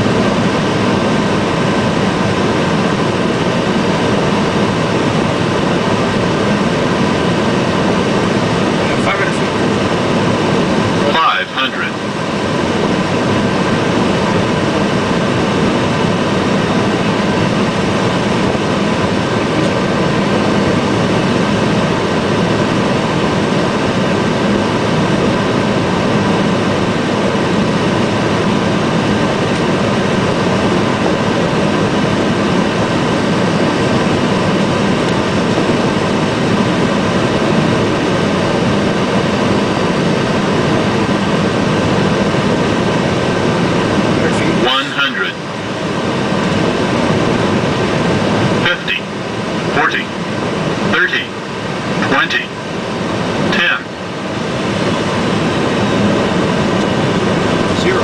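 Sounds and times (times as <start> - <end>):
airflow and engine noise: 0.0 - 58.0.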